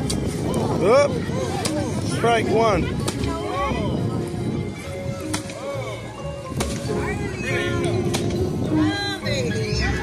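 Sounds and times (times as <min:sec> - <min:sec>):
background music: 0:00.0 - 0:10.0
children's voices: 0:01.0 - 0:10.0.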